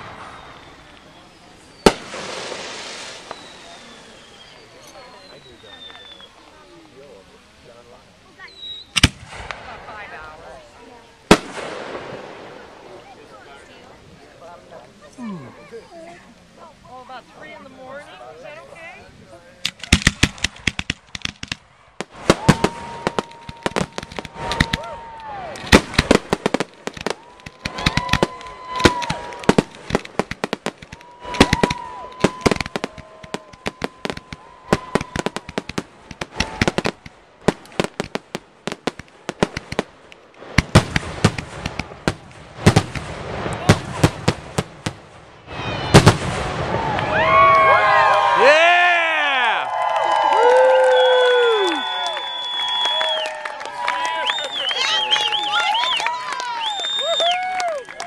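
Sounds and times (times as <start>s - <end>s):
fireworks whistling: 0.0s - 6.7s, 8.3s - 10.2s, 19.8s - 47.5s, 50.8s - 53.5s, 54.1s - 57.5s
fireworks bangs and crackles: 0.0s - 15.1s, 19.6s - 48.5s
crowd cheering and whooping: 22.3s - 25.7s, 27.0s - 29.7s, 30.8s - 35.6s, 46.6s - 58.0s.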